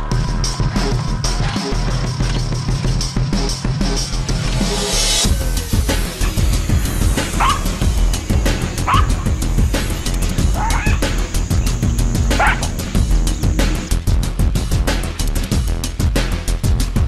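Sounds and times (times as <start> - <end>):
background music: 0.0 - 17.0
jackals yelping: 5.6 - 13.9.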